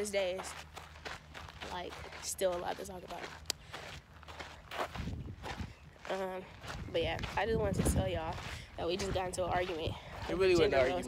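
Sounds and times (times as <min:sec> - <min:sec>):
footsteps on dirt trail: 0:00.0 - 0:11.0.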